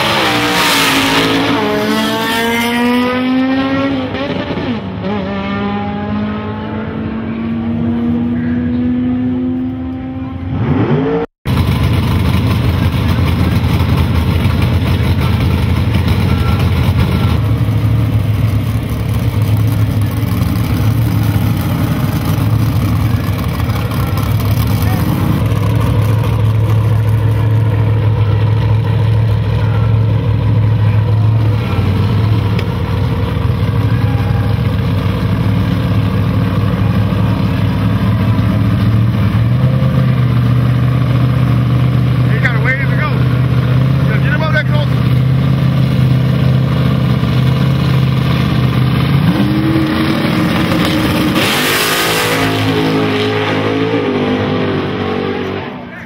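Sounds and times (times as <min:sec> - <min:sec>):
drag car engine revving away: 0:00.0 - 0:56.0
drag car engine idling: 0:11.5 - 0:49.2.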